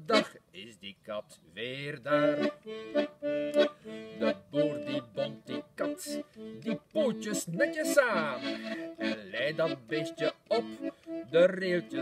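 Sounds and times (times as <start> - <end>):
accordion rhythmic chords: 0.0 - 0.8, 1.6 - 12.0.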